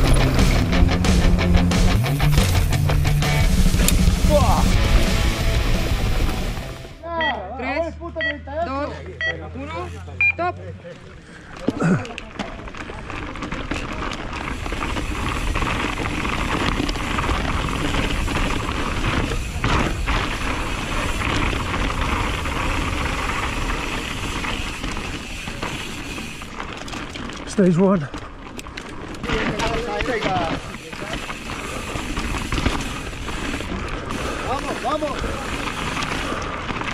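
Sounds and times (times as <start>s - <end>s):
bike rattling over rough ground: 0.0s - 6.8s, 10.8s - 36.9s
bike tyre and wind noise: 0.0s - 7.1s, 10.8s - 36.9s
race timer beeping: 7.0s - 10.5s
nearby voices: 11.0s - 13.0s.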